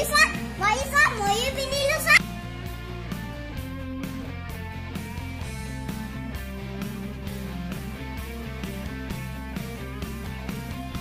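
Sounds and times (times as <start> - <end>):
children calling and squealing: 0.0 - 2.2
background music: 0.0 - 11.0.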